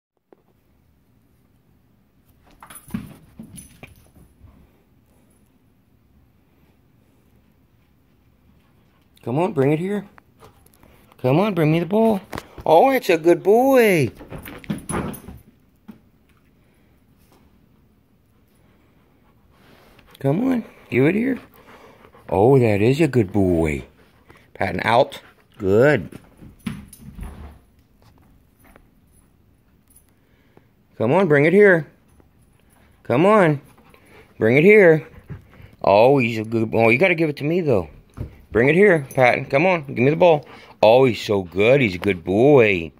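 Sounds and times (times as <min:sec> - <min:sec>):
collar tag jingling: 0:02.5 - 0:05.7, 0:31.2 - 0:42.9
dog paws thumping: 0:34.9 - 0:40.4
dog paws thudding on carpet: 0:37.8 - 0:39.4.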